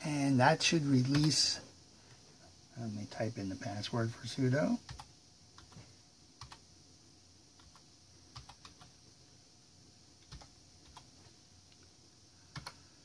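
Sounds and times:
computer keyboard keystrokes: 4.9s - 5.8s, 8.4s - 8.9s, 10.2s - 11.1s, 12.5s - 12.8s.

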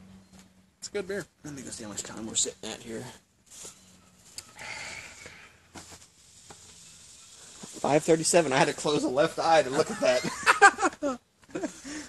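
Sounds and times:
soft hiss: 1.2s - 12.0s.

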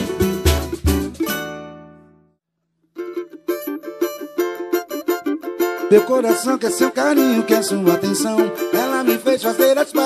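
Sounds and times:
cavaquinho picked riff: 0.0s - 10.0s.

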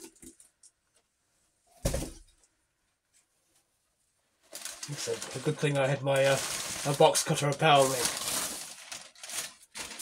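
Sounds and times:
packing paper rustling: 4.5s - 10.0s.

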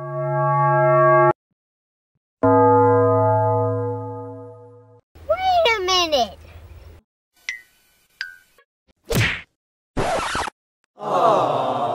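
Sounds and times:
cartoon punch whack: 9.0s - 10.5s
record scratch effect: 10.0s - 10.5s.

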